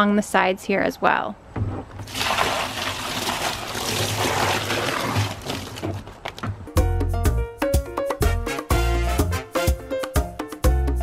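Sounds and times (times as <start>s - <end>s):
water splashing into plastic bin: 2.0s - 6.4s.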